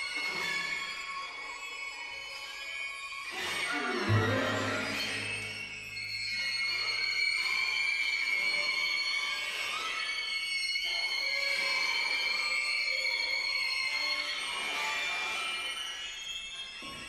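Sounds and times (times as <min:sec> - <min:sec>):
high held squeal-like pitch: 0:00.2 - 0:16.9
soft airy texture: 0:04.0 - 0:06.3.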